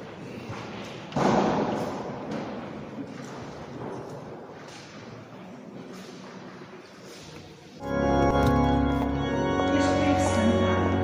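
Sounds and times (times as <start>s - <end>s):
heavy thump echoing: 1.1s - 2.8s.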